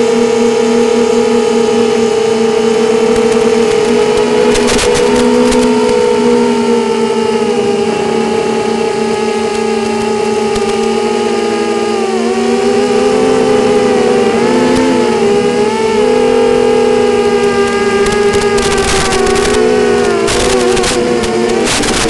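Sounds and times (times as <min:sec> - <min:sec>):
drone motors whining: 0:00.0 - 0:22.0
radio signal crackle: 0:02.7 - 0:06.4, 0:07.8 - 0:11.6, 0:12.7 - 0:22.0.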